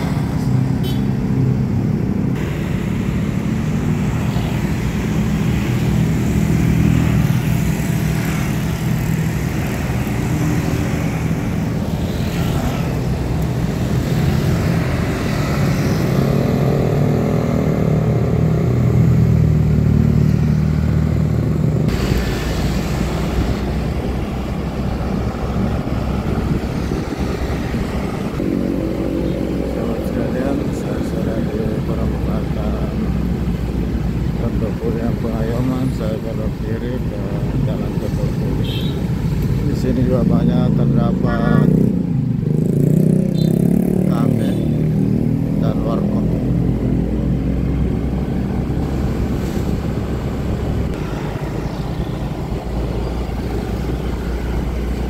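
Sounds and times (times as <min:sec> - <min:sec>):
engine drone: 0:00.0 - 0:55.0
road noise: 0:00.0 - 0:55.0.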